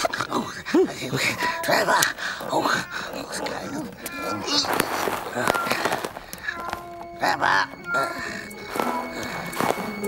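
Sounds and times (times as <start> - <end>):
person muttering and grumbling: 0.0 - 5.7.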